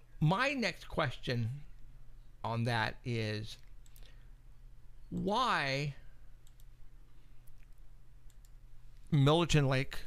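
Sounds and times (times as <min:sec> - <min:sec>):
low electrical hum: 0:00.0 - 0:10.0
computer mouse clicks: 0:03.6 - 0:04.2, 0:06.4 - 0:06.8, 0:07.4 - 0:08.6.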